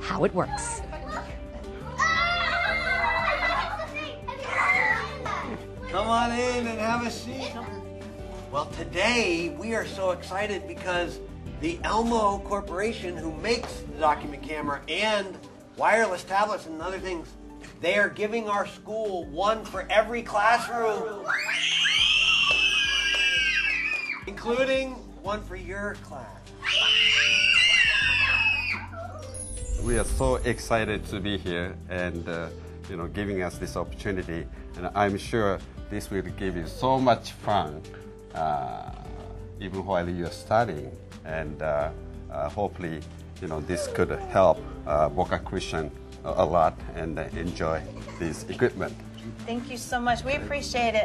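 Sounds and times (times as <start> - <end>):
children shrieking and cheering: 0.8 - 6.3, 20.4 - 24.4, 26.6 - 29.5.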